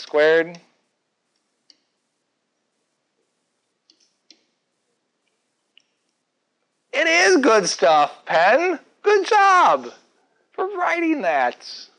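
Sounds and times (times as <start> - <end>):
stylus tapping tablet screen: 0.0 - 6.8.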